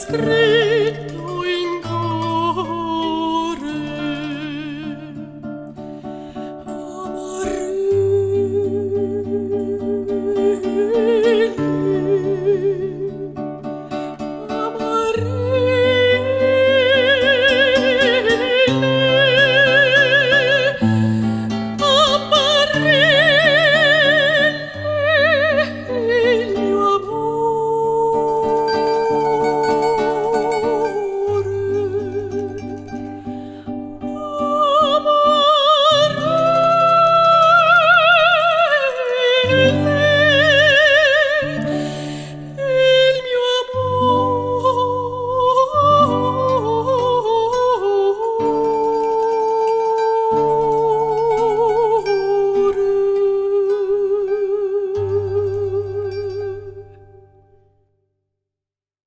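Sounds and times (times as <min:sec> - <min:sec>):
woman singing a long note: 0:00.0 - 0:05.2, 0:14.5 - 0:20.9, 0:21.7 - 0:33.0, 0:34.1 - 0:41.8
plucked guitar: 0:00.0 - 0:57.8.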